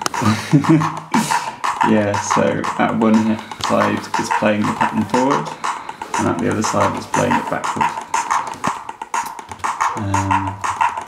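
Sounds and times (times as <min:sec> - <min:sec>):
looping drum machine pattern: 0:00.0 - 0:11.0.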